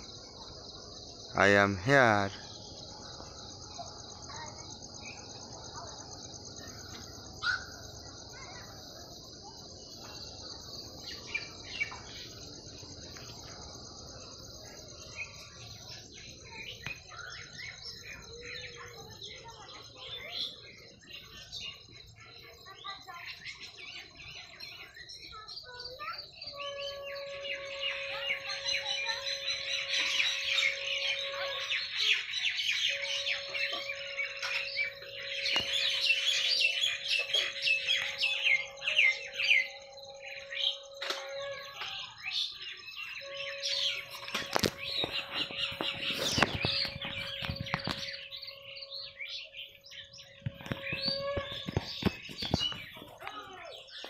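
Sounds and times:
birds chirping and twittering: 0:00.0 - 0:54.0.

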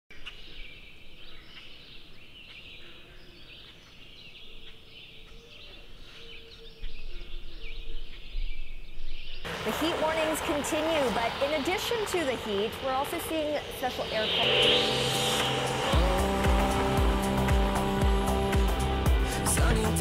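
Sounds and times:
low drawn-out bird calls: 0:00.1 - 0:09.7
small birds chirping and trilling: 0:00.1 - 0:18.4
low rumble: 0:13.5 - 0:19.3.

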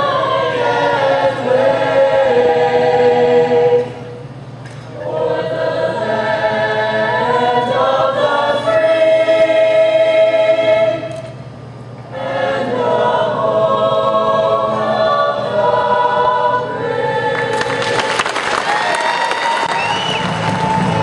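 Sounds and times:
choir singing unaccompanied: 0:00.0 - 0:04.2, 0:04.9 - 0:11.2, 0:12.1 - 0:18.4
crowd cheering and applauding: 0:17.5 - 0:21.0
whistles from crowd: 0:19.0 - 0:21.0.

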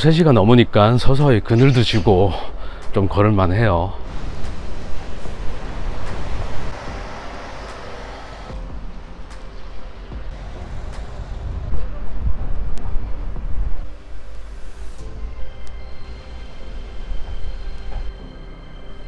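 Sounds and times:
road traffic going by: 0:04.0 - 0:11.6.

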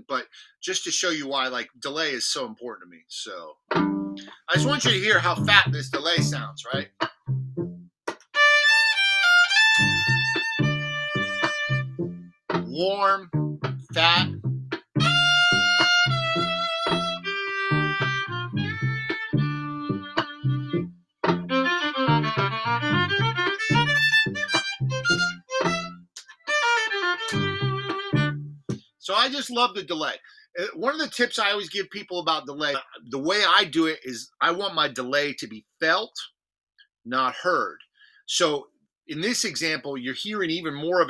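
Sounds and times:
looped plucked bass pattern: 0:03.7 - 0:28.8
violin bowing a melody: 0:04.2 - 0:06.6, 0:08.3 - 0:12.2, 0:15.0 - 0:28.7.

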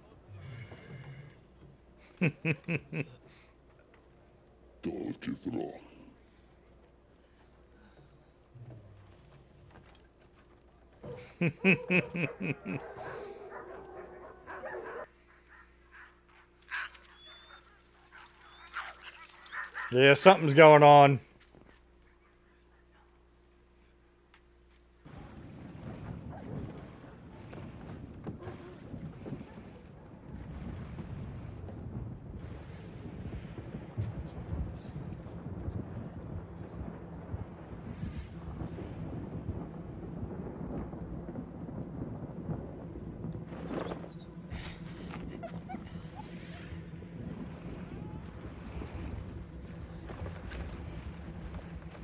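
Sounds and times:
low steady hum: 0:00.0 - 0:52.0
low wind-like rumble: 0:25.0 - 0:52.0.

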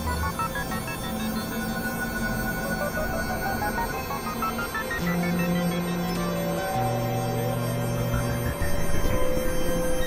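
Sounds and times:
sustained droning tones: 0:00.0 - 0:10.0.

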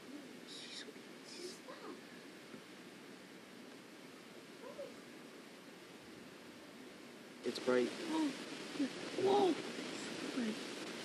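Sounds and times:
faint whispering voices: 0:00.0 - 0:02.2, 0:07.4 - 0:11.0
camcorder tape hiss: 0:00.0 - 0:11.0.

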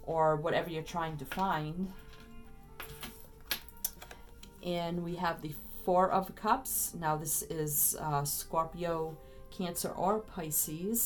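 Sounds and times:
soft background music: 0:00.0 - 0:11.0
card picked up off table clicks: 0:01.3 - 0:04.6.

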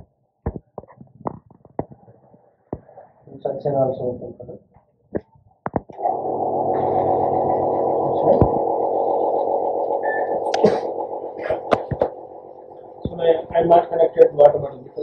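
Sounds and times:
machine hum: 0:05.6 - 0:15.0.

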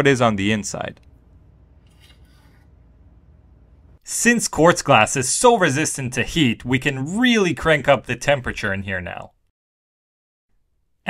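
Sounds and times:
faint low hum: 0:00.0 - 0:04.0.

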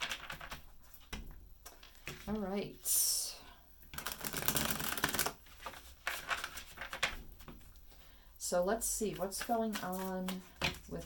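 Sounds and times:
cards being shuffled: 0:04.0 - 0:07.6, 0:09.1 - 0:11.0.

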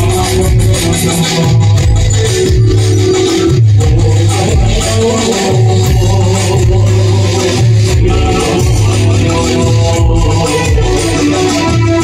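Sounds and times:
dance music over pa system: 0:00.0 - 0:12.0.

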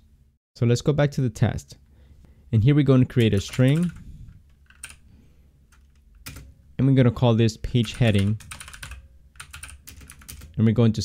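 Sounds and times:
computer keyboard keystrokes: 0:03.2 - 0:05.0, 0:05.7 - 0:06.5, 0:07.8 - 0:10.6.

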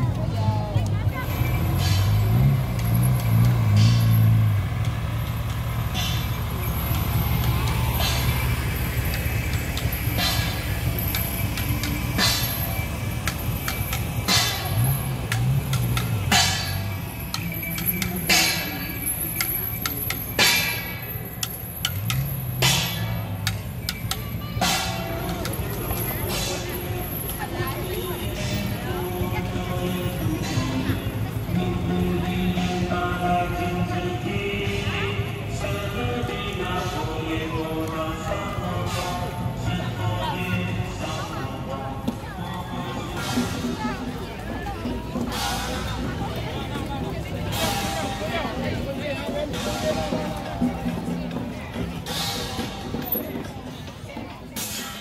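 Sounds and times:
truck engine passing: 0:00.0 - 0:55.0
voices: 0:00.0 - 0:55.0
percussion clicks: 0:00.8 - 0:34.8
music: 0:07.5 - 0:55.0.

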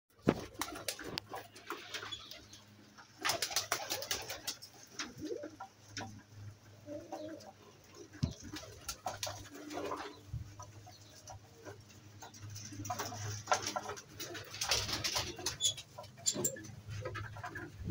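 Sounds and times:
pigeons cooing: 0:00.2 - 0:17.9.

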